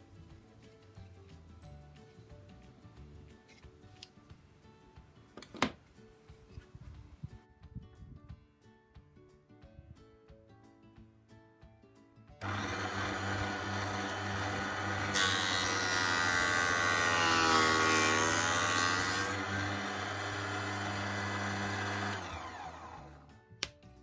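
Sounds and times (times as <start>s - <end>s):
planer cutting wooden board: 12.4s - 23.2s
planer motor humming: 12.4s - 23.2s.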